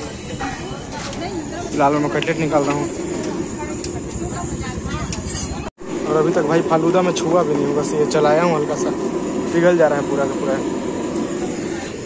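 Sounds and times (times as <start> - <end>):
faint background voices: 0.0 - 6.7
low rumble of street noise: 0.0 - 12.0.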